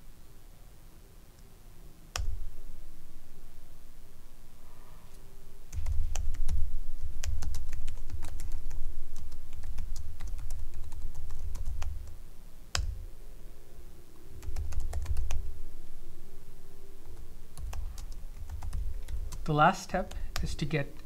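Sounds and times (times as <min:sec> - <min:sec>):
typing on computer keyboard: 0:07.2 - 0:12.1, 0:14.4 - 0:15.4, 0:17.6 - 0:20.6.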